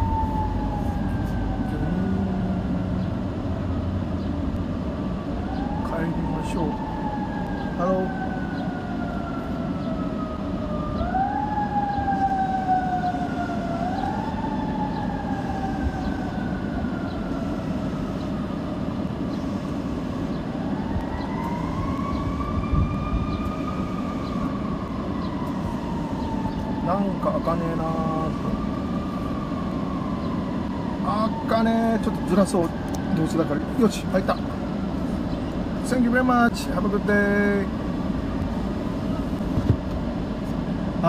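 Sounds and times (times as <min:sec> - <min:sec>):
siren wailing: 0:00.0 - 0:04.0, 0:04.6 - 0:40.4
street traffic: 0:00.0 - 0:41.0.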